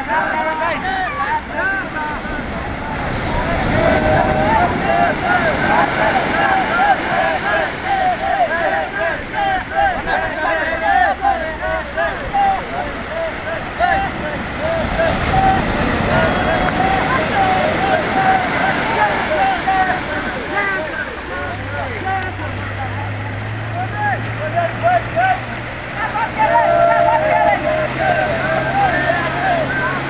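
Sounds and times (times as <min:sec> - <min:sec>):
men calling out: 0:00.0 - 0:30.0
men shouting: 0:00.0 - 0:30.0
surf: 0:00.0 - 0:30.0
wind: 0:00.0 - 0:30.0.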